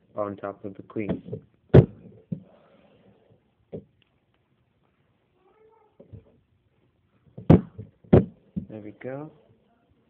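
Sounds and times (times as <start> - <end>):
knocks on a hard surface: 1.1 - 2.4, 7.4 - 8.8.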